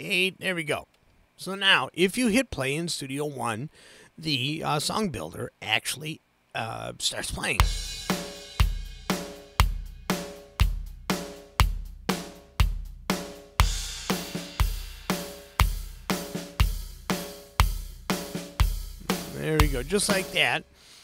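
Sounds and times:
drum kit groove: 7.6s - 21.0s.

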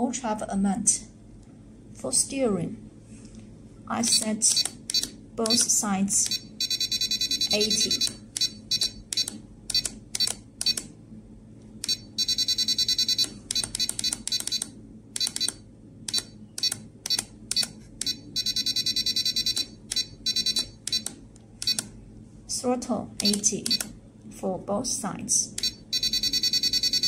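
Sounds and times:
radio transmitter beeping: 4.5s - 10.8s.

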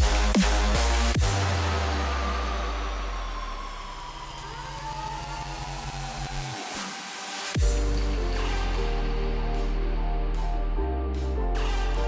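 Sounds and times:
chopped bass notes: 0.0s - 6.2s, 7.6s - 12.0s
rising synth sweeps: 0.0s - 12.0s
synth tone sliding downward: 1.5s - 7.1s.

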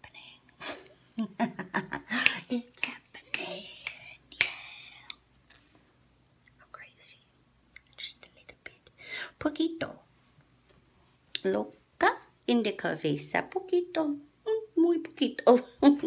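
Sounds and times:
woman whispering softly: 0.0s - 0.5s, 2.5s - 5.2s, 6.5s - 9.0s
woman laughing: 0.6s - 2.6s.

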